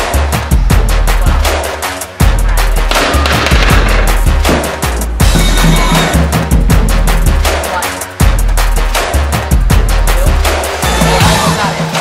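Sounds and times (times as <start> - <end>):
loud bass-heavy music: 0.0 - 12.0
fast drum beat: 0.7 - 12.0.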